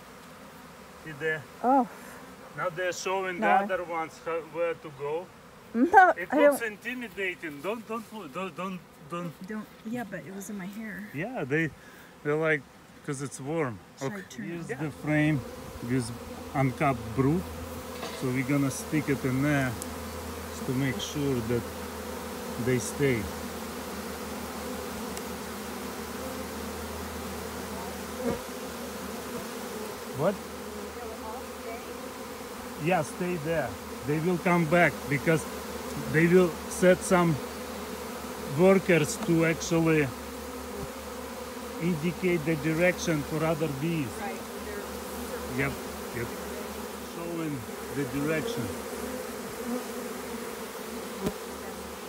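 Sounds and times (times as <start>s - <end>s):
bee swarm buzzing: 0.0s - 52.0s.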